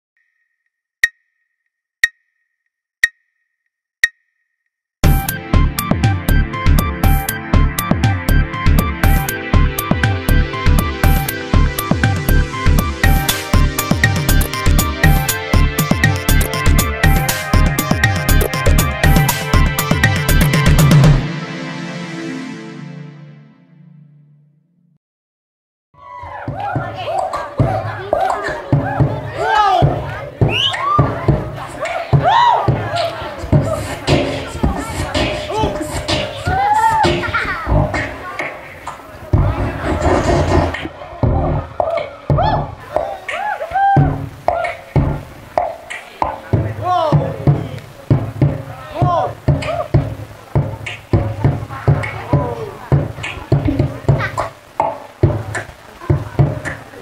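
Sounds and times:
clock ticking: 1.0 - 1.3, 2.0 - 2.2, 3.0 - 3.2, 5.0 - 21.2, 44.0 - 56.9
person beatboxing through speakers: 29.8 - 40.9, 49.4 - 57.0.

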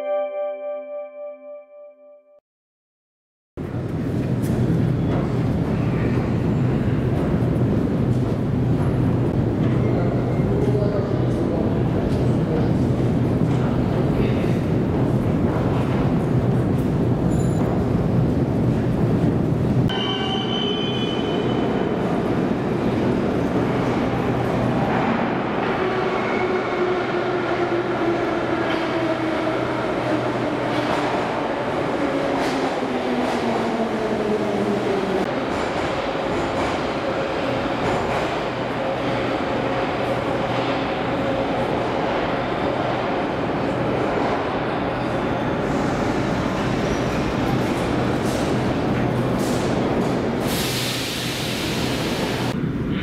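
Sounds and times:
metro train rumble and rail noise: 3.6 - 53.0.

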